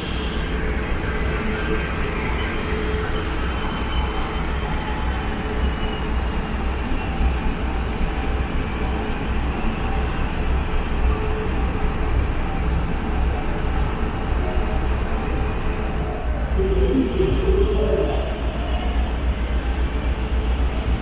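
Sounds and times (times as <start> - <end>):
electric train slowing: 0.0 - 21.0
faint falling whine: 16.3 - 19.5.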